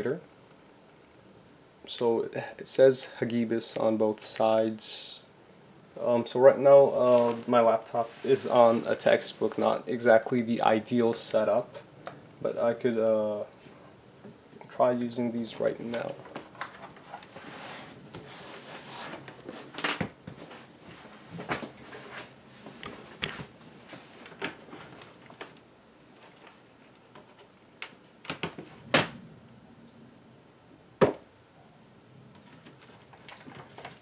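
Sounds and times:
laptop handling knocks and rustles: 26.3s - 29.2s.

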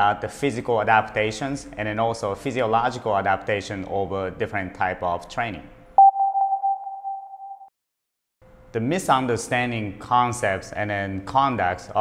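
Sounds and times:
electronic ping: 6.0s - 7.7s.

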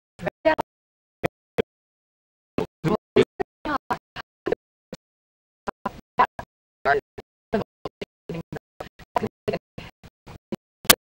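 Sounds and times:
choppy voice fragments: 2.6s - 4.6s.

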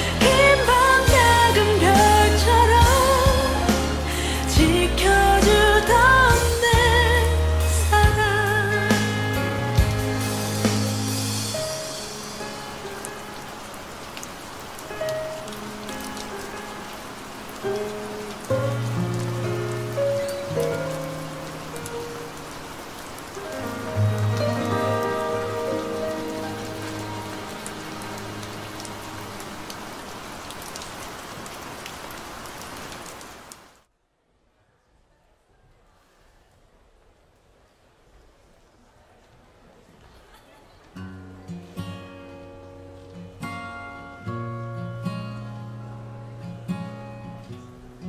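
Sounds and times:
slow instrumental ballad: 0.0s - 29.9s, 41.0s - 47.9s
steady rain: 0.0s - 48.0s.

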